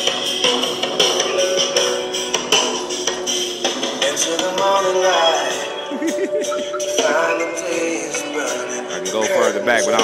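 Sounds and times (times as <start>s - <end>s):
song from car stereo: 0.0s - 10.0s.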